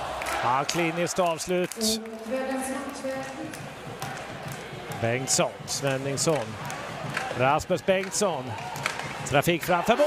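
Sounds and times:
crowd in arena: 0:00.0 - 0:10.0
arena music: 0:01.8 - 0:07.4.

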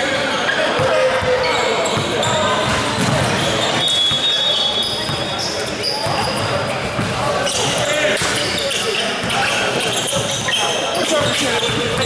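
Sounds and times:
sneakers squeaking: 0:00.0 - 0:12.0
voices in a gym: 0:00.0 - 0:12.0.

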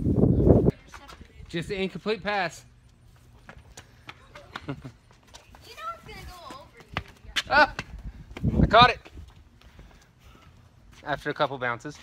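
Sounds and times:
ball bouncing on concrete: 0:03.4 - 0:08.5.

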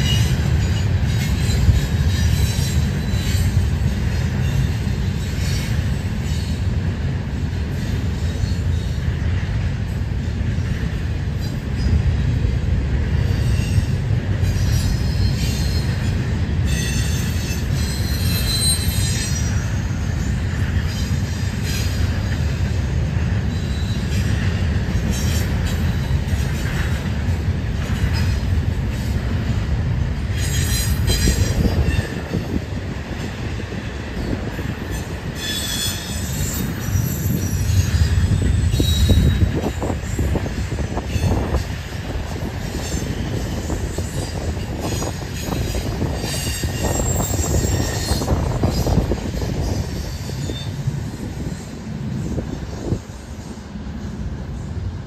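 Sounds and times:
railcars rumbling: 0:00.0 - 0:55.0
high-pitched wheel squeals: 0:13.4 - 0:22.0, 0:34.8 - 0:41.7, 0:42.7 - 0:51.6.

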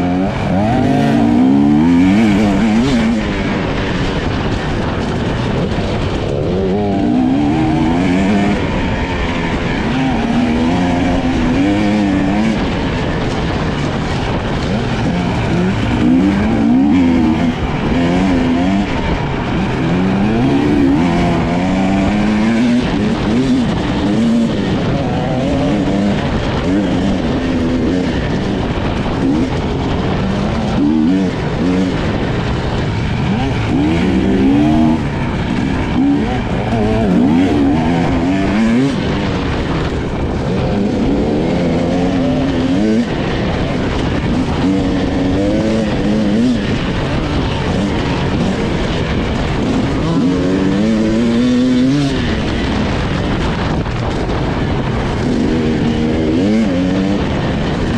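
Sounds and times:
dirt bike engine revving: 0:00.0 - 0:57.9.

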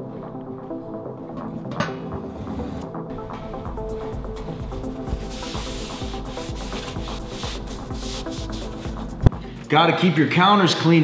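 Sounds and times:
background music: 0:00.0 - 0:11.0
paper towel tearing: 0:05.2 - 0:09.0.

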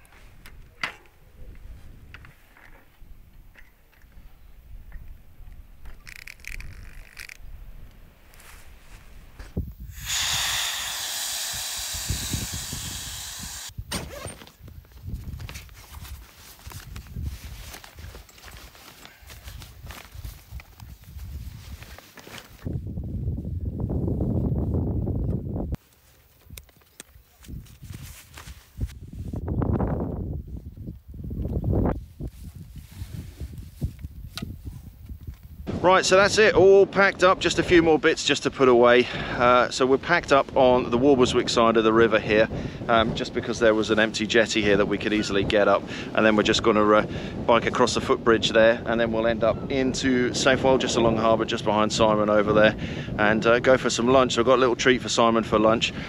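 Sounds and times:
loud steady hiss: 0:09.8 - 0:13.8
fabric bags rustling: 0:15.8 - 0:20.6.

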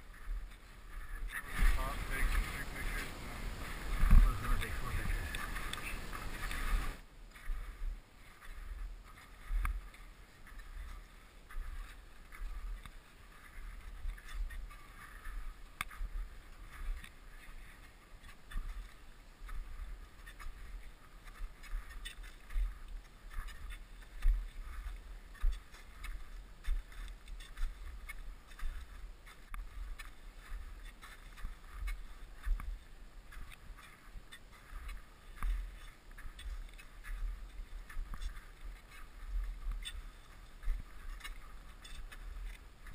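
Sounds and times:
wind buffeting microphone: 0:00.0 - 0:08.0
crampon footsteps in hard snow: 0:00.0 - 0:42.9.

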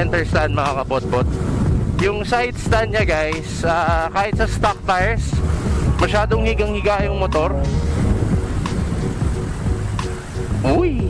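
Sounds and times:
background music: 0:00.0 - 0:11.0
motorcycle engine rumble: 0:00.0 - 0:11.0
wind noise: 0:00.0 - 0:11.0.

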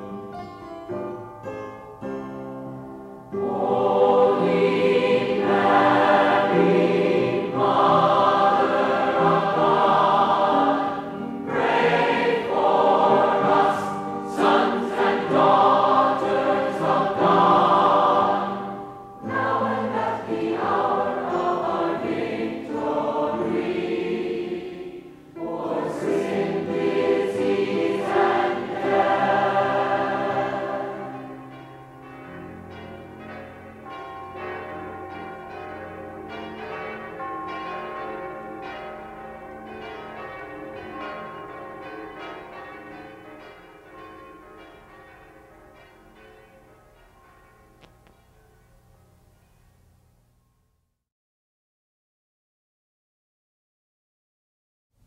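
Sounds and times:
congregation singing: 0:03.3 - 0:46.6
sustained tones: 0:03.3 - 0:49.9.

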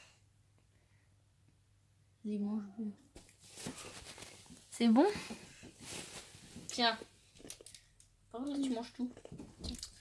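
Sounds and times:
snack packet rustling: 0:03.2 - 0:04.7.

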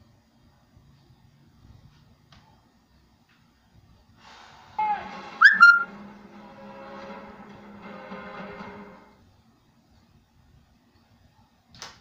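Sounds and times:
music from a television: 0:04.2 - 0:09.3
sliding whistle-like notes: 0:04.8 - 0:06.0.

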